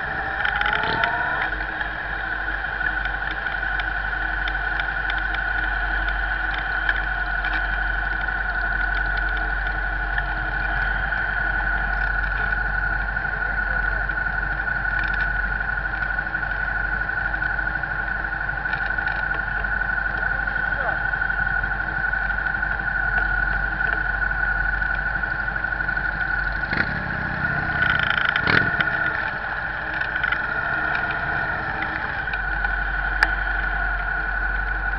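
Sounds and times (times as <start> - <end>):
high-pitched whine: 0.0 - 34.9
traffic engine rumble: 0.0 - 34.9.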